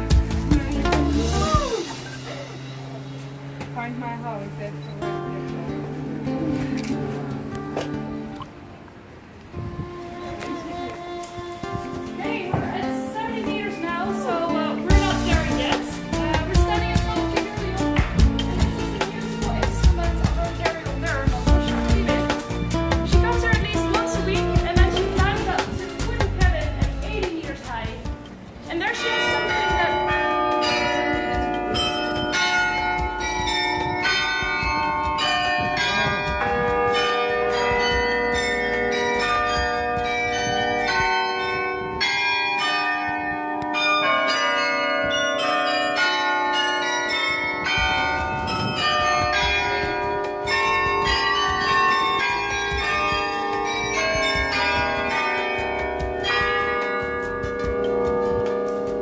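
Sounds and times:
church bells ringing: 0.0 - 9.4, 10.6 - 59.0.

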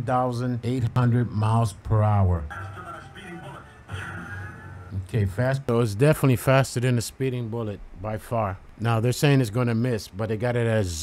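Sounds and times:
man announcing: 0.0 - 3.9.

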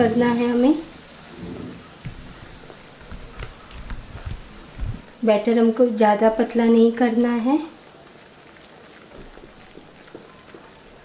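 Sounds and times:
hand squishing batter in bowl: 2.1 - 5.1.

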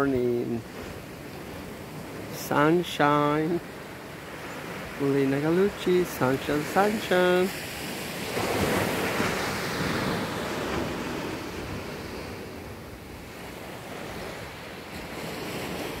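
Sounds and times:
small waves breaking on beach: 0.0 - 16.0.

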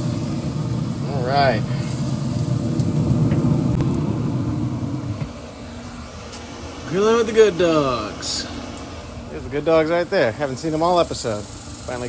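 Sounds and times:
smoker fan and fire rumble: 0.0 - 12.0.

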